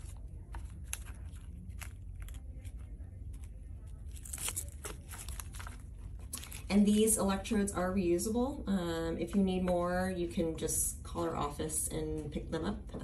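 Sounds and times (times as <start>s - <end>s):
crinkling rustles of pads: 0.0s - 6.9s
low steady hum: 0.0s - 13.0s.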